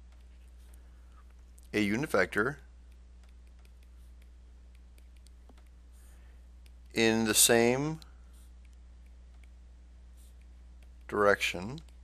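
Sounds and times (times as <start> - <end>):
low steady hum: 0.0 - 12.0
stylus tapping tablet screen: 2.8 - 7.0.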